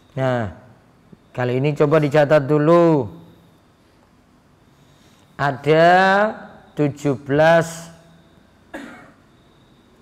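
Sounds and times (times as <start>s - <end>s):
person coughing: 8.7s - 9.2s.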